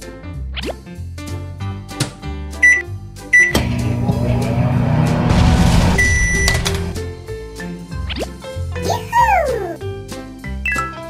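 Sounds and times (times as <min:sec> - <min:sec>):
toy microwave beeps: 0:02.6 - 0:03.6, 0:06.0 - 0:06.6, 0:10.6 - 0:11.0.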